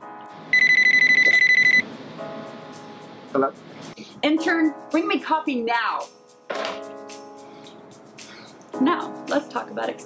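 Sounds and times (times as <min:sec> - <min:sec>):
telephone trilling ring: 0:00.5 - 0:01.8.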